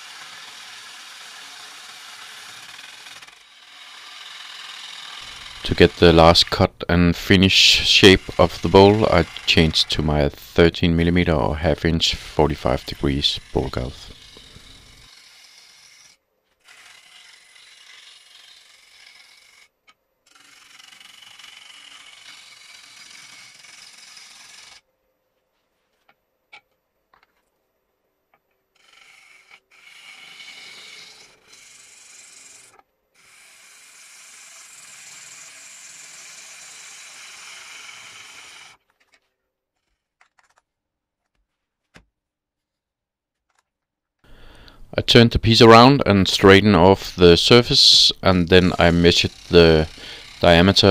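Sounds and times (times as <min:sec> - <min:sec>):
lathe gouge scraping wood: 0:00.0 - 0:19.7, 0:20.3 - 0:24.8, 0:28.8 - 0:39.2, 0:45.6 - 0:50.9.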